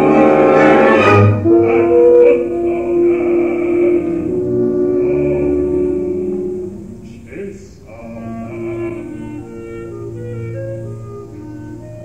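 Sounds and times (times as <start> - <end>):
long held high note: 0.0 - 7.1
orchestra holding a chord: 0.0 - 12.0.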